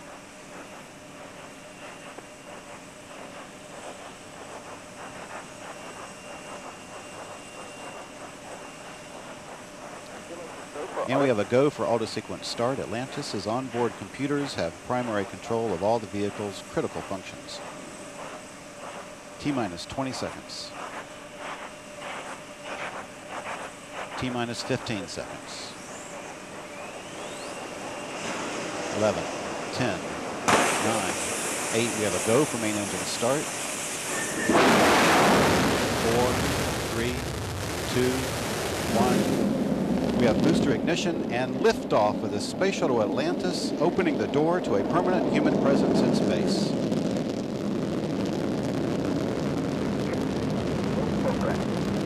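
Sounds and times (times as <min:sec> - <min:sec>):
faint rising whistle: 0:00.0 - 0:18.4, 0:19.4 - 0:30.1, 0:30.8 - 0:36.4
deep rocket exhaust roar: 0:00.0 - 0:52.0
steady rushing noise: 0:00.0 - 0:52.0.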